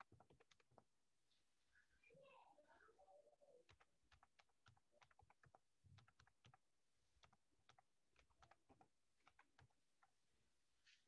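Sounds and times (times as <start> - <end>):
typing on computer keyboard: 0.0 - 0.9, 3.6 - 10.2.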